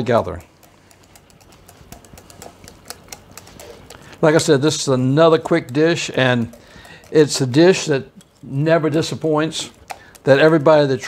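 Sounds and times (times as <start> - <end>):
metal whisk clicking on glass bowl: 0.0 - 11.0.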